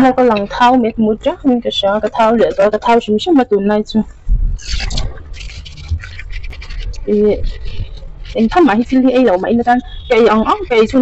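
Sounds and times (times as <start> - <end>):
sponge scrubbing dishes: 0.0 - 3.0, 4.6 - 11.0.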